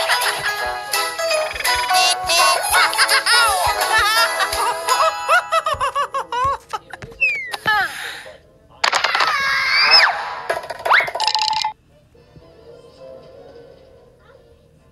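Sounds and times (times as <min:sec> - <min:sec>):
bouncy cartoon music: 0:00.0 - 0:07.4
comic sliding whistle effects: 0:09.7 - 0:10.3.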